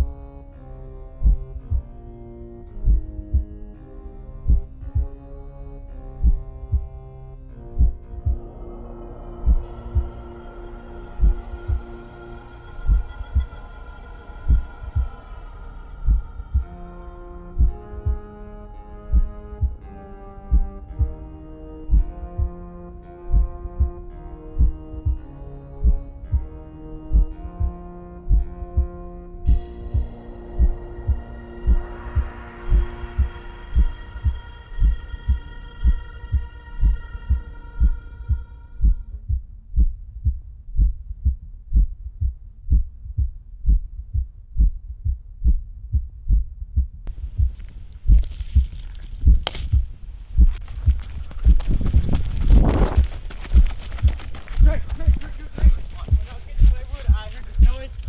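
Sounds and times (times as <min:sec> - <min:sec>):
eerie held music notes: 0:00.0 - 0:39.2
low hum: 0:00.0 - 0:58.0
thumping heartbeat: 0:01.0 - 0:03.7, 0:04.4 - 0:05.4, 0:06.0 - 0:12.0, 0:12.8 - 0:13.7, 0:14.4 - 0:15.4, 0:16.0 - 0:18.3, 0:19.0 - 0:58.0.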